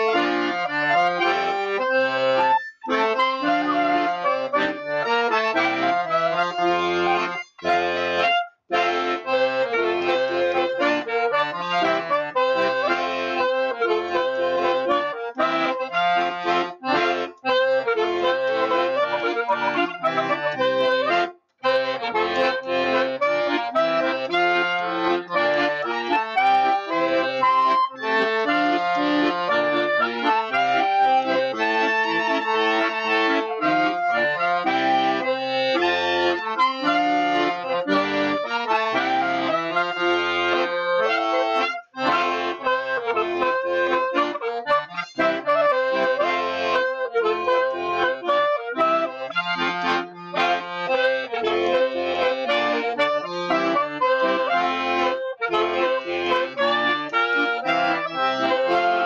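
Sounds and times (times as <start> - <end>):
clarinet: 0.0 - 59.0
piano accordion: 0.0 - 59.0.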